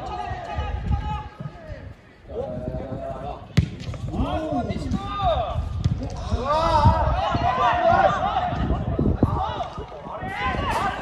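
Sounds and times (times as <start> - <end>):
football kicked with a thud: 3.6 - 4.1
players shouting: 4.2 - 11.0.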